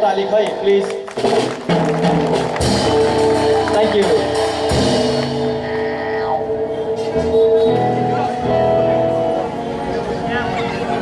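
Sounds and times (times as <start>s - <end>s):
guitar and keyboard chords: 0.0s - 11.0s
drum kit strikes: 1.2s - 5.6s.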